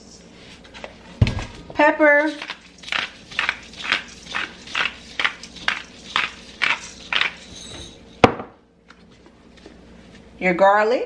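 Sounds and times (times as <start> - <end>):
pepper grinder grinding: 2.3 - 8.2.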